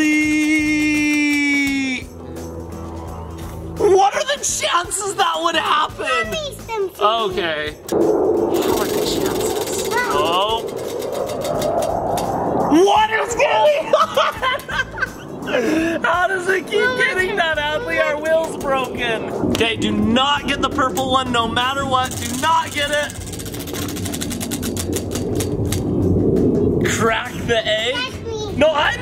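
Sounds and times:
low rumble: 7.9s - 29.0s
prize wheel pointer clicking: 22.1s - 25.8s.

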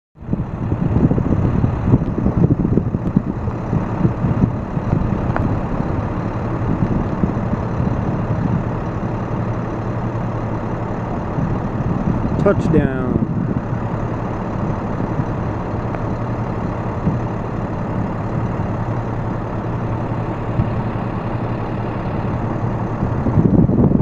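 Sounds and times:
airplane engine droning: 0.2s - 24.0s
gusty low rumble: 0.2s - 24.0s.

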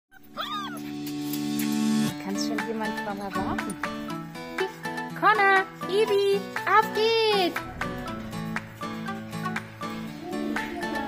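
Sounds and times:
puppy whining: 0.1s - 0.9s.

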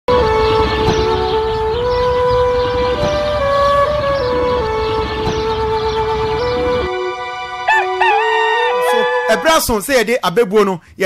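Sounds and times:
held horn-like tone: 0.1s - 9.8s.

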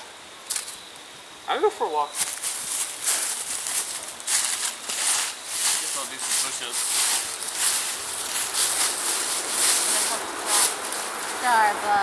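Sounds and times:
footsteps crunching dry leaves: 2.1s - 12.0s.

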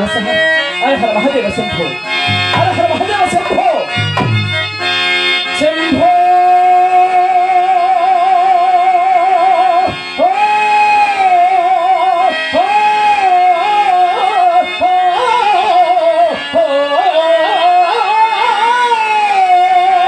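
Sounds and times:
man singing into a microphone: 0.0s - 4.3s, 5.4s - 20.0s
harmonium drone: 0.0s - 20.0s.

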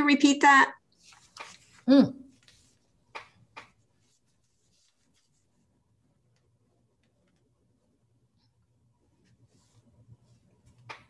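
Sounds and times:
brush stroking paper: 0.9s - 3.0s, 3.7s - 5.8s, 9.2s - 10.9s.

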